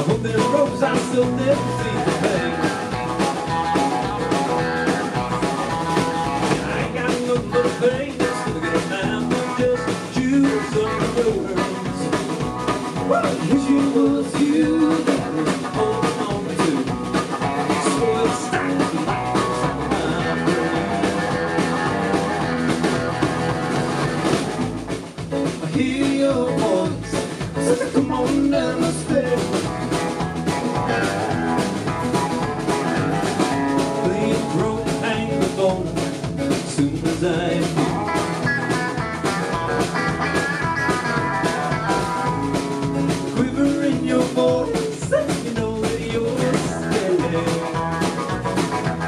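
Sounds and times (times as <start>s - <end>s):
live rock band playing: 0.0s - 49.0s.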